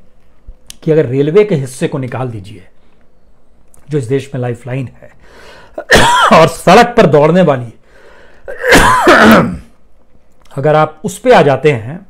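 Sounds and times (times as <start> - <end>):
man coughing: 5.8 - 6.6, 8.5 - 9.7.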